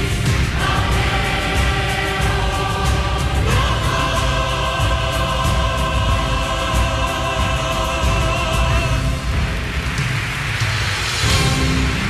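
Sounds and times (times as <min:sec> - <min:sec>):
choir singing with orchestra: 0:00.0 - 0:10.3, 0:11.1 - 0:12.0.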